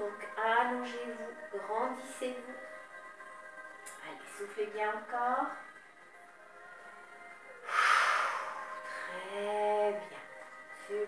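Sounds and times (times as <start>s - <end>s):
soft background music: 0.0s - 11.0s
woman exhaling: 7.6s - 9.2s.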